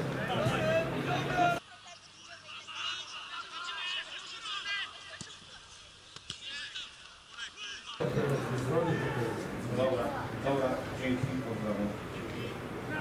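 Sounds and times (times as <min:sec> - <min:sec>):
distant shouting voices: 0:00.0 - 0:05.7, 0:06.4 - 0:11.0, 0:11.9 - 0:13.0.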